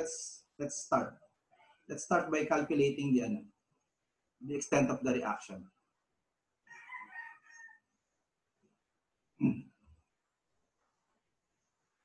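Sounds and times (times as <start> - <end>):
rooster crowing: 6.6 - 7.9.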